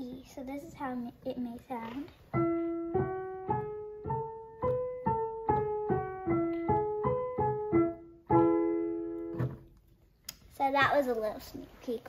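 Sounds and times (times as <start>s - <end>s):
piano playing scale and chords: 2.3s - 9.8s.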